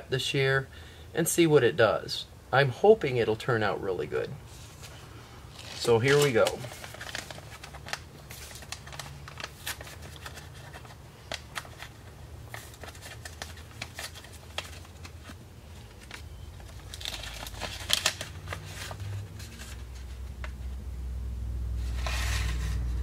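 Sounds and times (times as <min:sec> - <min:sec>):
paper packet crinkling: 0:04.6 - 0:20.5.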